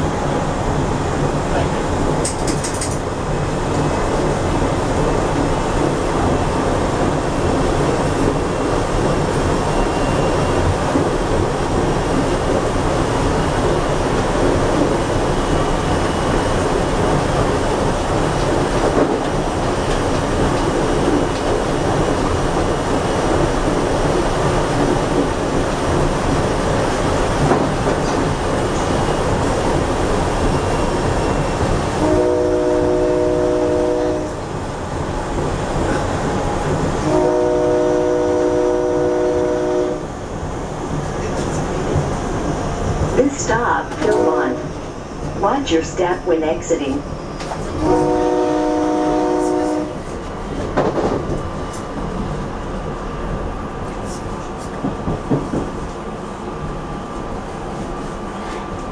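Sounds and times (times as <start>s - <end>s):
train wheels rumbling on rail: 0.0s - 58.9s
train horn chord: 32.0s - 34.5s, 37.0s - 40.1s, 44.0s - 44.7s, 47.8s - 50.0s.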